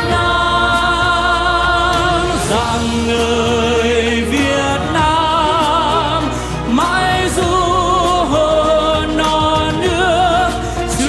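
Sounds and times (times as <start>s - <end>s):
instrumental backing: 0.0s - 11.0s
sustained choral chord: 0.0s - 11.0s.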